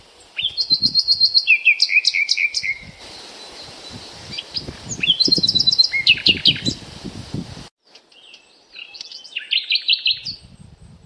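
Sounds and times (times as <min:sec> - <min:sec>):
songbirds chirping: 0:00.0 - 0:06.8, 0:07.8 - 0:10.9.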